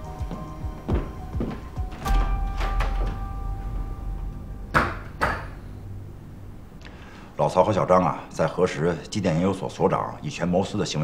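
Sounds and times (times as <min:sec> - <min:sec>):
footsteps on wooden floor: 0:00.0 - 0:04.3
background music: 0:00.0 - 0:10.5
door shutting: 0:00.9 - 0:05.9.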